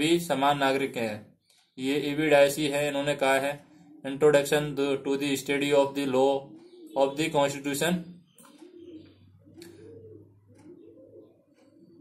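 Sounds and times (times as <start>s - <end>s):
faint pigeon cooing: 2.9s - 12.0s.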